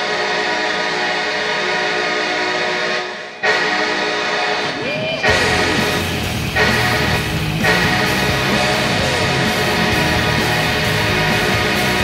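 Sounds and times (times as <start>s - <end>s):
stadium horn blast: 0.0s - 12.0s.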